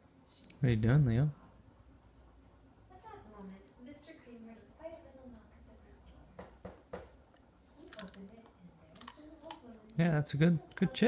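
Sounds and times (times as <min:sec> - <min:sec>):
child crunching chips: 0:09.0 - 0:09.6.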